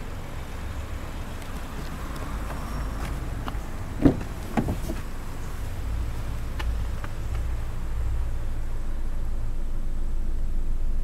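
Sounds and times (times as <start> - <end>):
car door swinging open clunk: 3.0 - 5.1
car door latch clunk: 4.0 - 5.1.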